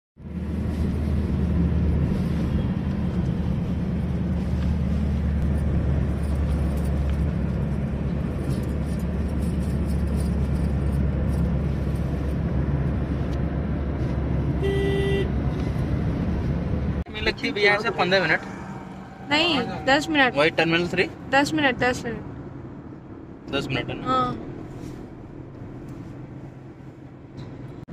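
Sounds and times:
car engine and tyre noise: 0.2s - 27.9s
car horn toot: 14.6s - 15.4s, 17.3s - 21.0s.

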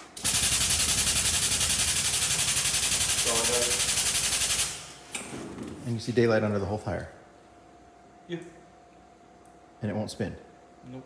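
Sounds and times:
air jack pulsing hiss: 0.0s - 5.2s.

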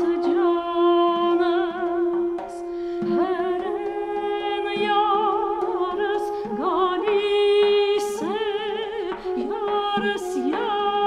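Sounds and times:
duduk drone: 0.0s - 11.0s
duduk melody with vibrato: 0.0s - 11.0s
woman singing folk song: 0.0s - 11.0s.

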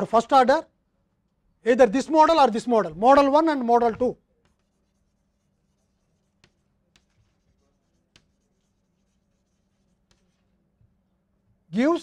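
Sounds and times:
chalk tapping: 3.2s - 11.0s
chalk scratching on blackboard: 4.0s - 10.6s.

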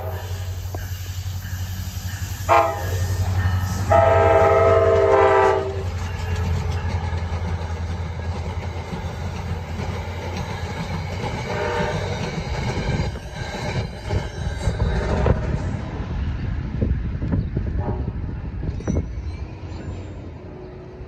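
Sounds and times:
train rumbling past: 0.0s - 21.0s
train horn chord: 2.4s - 5.9s, 11.5s - 12.1s, 17.8s - 18.2s.

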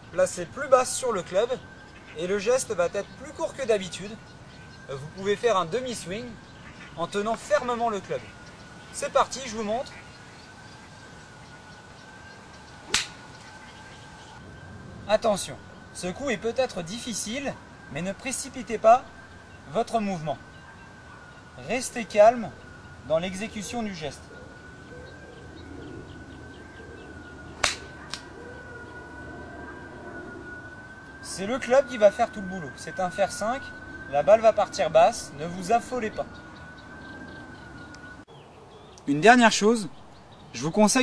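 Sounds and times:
golf club striking ball: 12.9s - 13.3s, 27.6s - 28.2s.

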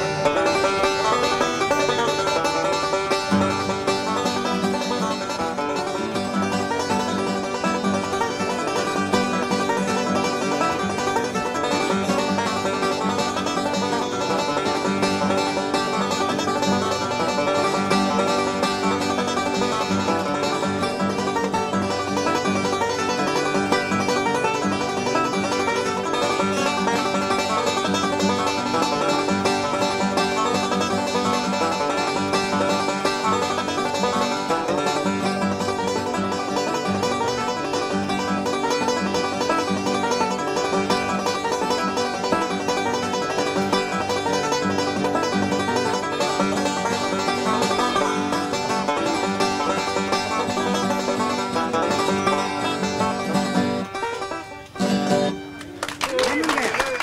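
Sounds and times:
banjo picking: 0.0s - 56.1s.

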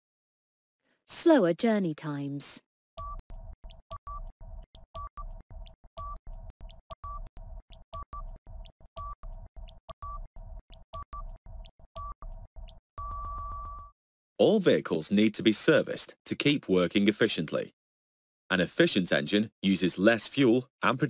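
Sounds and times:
fast timer ticking: 3.0s - 13.9s.

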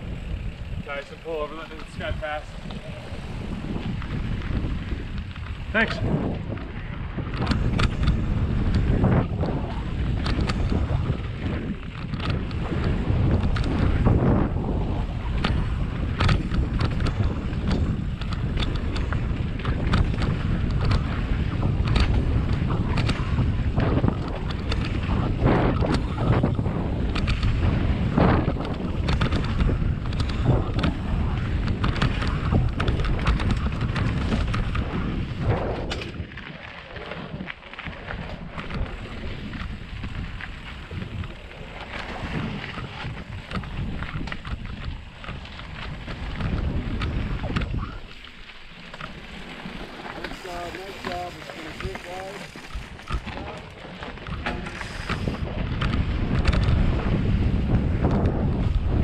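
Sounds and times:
bike rattling and clicking: 0.0s - 59.0s
tyres rumbling on dirt: 0.0s - 59.0s
wind buffeting microphone: 0.0s - 59.0s.

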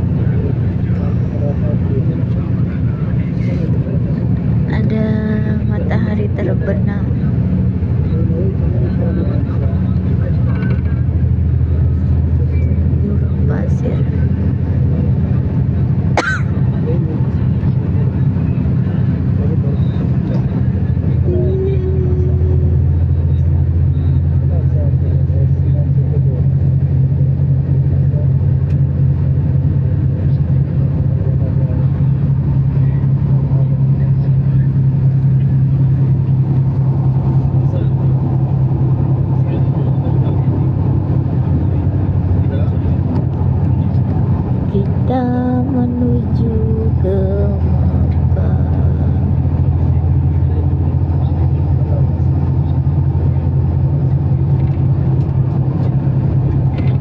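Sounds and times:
vehicle engine and road drone: 0.0s - 57.0s.

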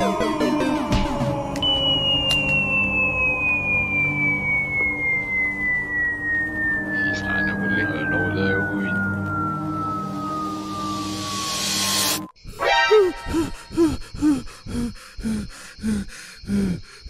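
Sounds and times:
low pulsing musical drone: 0.0s - 12.3s
descending cartoon whistle: 1.6s - 11.8s.

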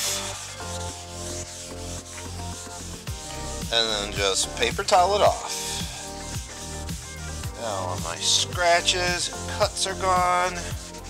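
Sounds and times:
background music with held notes: 0.0s - 11.0s
paper towel rubbing on wood: 0.0s - 11.0s.

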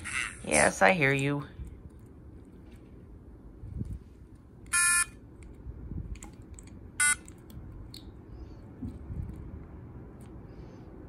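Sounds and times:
electronic buzzer tones: 4.7s - 5.1s, 7.0s - 7.2s.

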